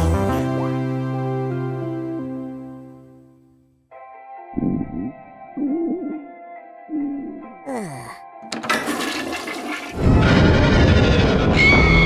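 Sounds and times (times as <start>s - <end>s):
background music: 0.0s - 10.0s
toilet flush water rushing: 8.5s - 10.1s.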